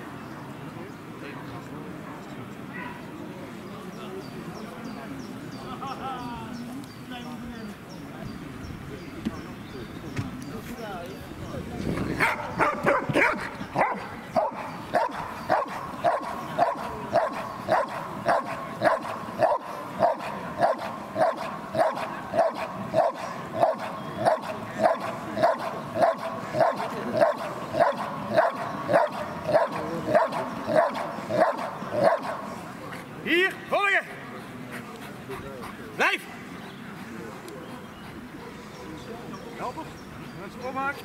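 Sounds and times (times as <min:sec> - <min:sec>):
dog barking: 0:02.7 - 0:03.0, 0:12.2 - 0:32.4.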